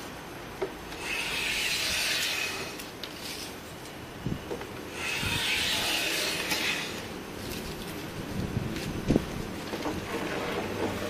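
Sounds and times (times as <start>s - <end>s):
hand plane cutting wood: 1.0s - 2.7s.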